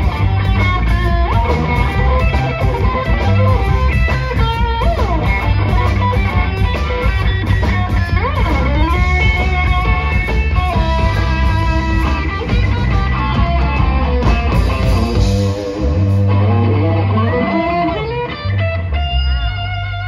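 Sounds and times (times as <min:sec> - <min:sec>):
bass guitar: 0:00.0 - 0:20.0
drums: 0:00.0 - 0:20.0
electric guitar lead: 0:00.0 - 0:20.0.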